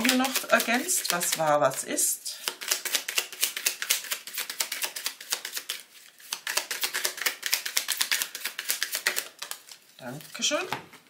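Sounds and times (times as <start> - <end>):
cards being shuffled: 0.0 - 1.5, 2.4 - 11.0.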